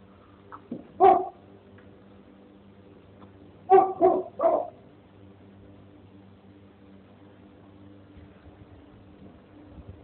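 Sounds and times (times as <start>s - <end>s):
dog barking: 1.0s - 1.4s, 3.7s - 4.8s.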